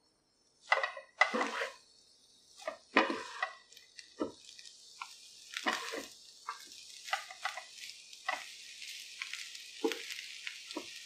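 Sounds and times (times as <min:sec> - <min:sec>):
metal utensil scraping a pan: 0:00.7 - 0:01.8, 0:02.6 - 0:04.3, 0:05.5 - 0:11.0.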